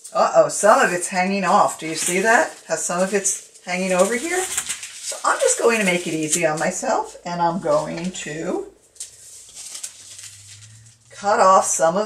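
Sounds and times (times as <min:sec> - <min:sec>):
paper rustling: 0:00.1 - 0:11.3.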